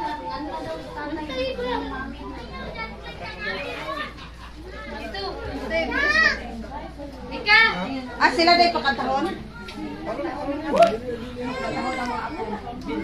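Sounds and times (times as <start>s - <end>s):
adults and children talking: 0.0s - 13.0s.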